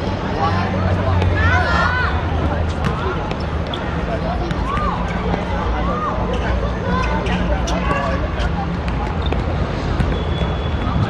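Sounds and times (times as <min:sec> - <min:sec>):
players shouting: 0:00.4 - 0:08.5.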